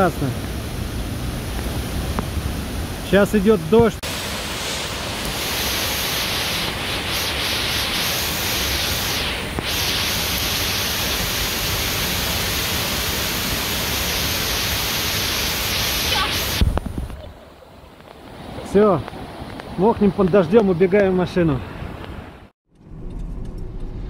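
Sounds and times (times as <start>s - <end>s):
distant waterfall rushing: 0.0s - 22.5s
rain falling: 4.1s - 20.7s.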